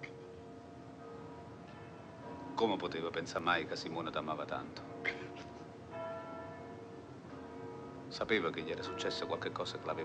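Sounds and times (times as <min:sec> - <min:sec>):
church bell ringing: 0:00.0 - 0:10.0.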